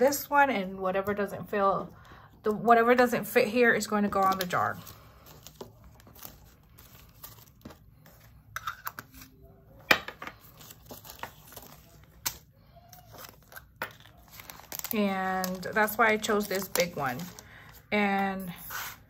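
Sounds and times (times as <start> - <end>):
plastic bags crinkling: 3.8 - 9.3, 10.3 - 17.9.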